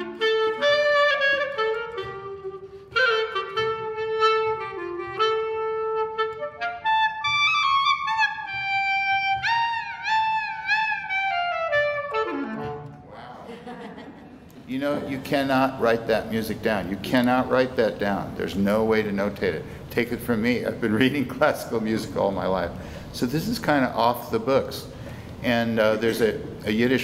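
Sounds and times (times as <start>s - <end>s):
solo clarinet melody: 0.0s - 13.1s.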